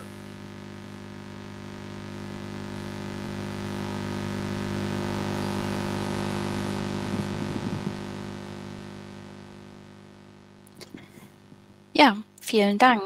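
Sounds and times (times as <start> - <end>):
electronic drone of held tones: 0.0 - 10.7.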